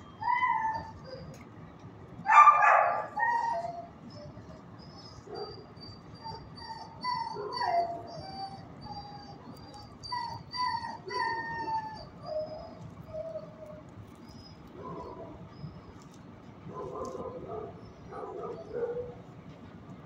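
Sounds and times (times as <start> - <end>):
dogs whining and howling: 0.0 - 1.5, 2.2 - 19.4
dog yelping: 0.1 - 1.4, 2.3 - 16.1, 16.7 - 19.3.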